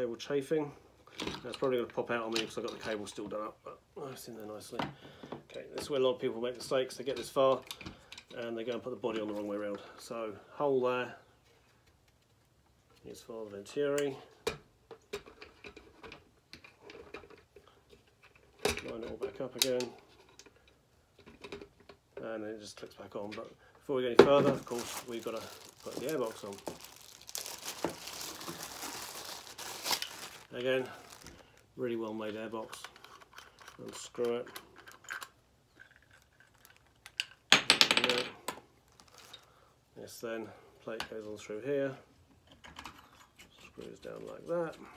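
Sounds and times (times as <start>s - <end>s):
plastic parts clicking and tapping: 7.1s - 9.8s, 14.4s - 22.3s, 32.3s - 38.6s, 42.3s - 43.5s.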